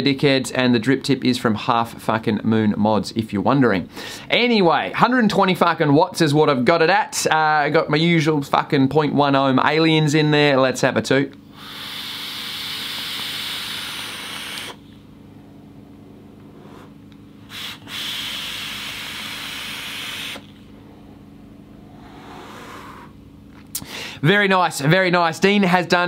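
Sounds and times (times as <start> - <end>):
vape hissing draw: 11.5 - 14.9, 16.5 - 20.6.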